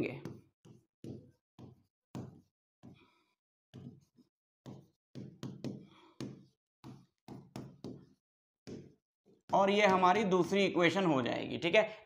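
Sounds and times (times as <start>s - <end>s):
stylus tapping on screen: 3.7s - 10.6s.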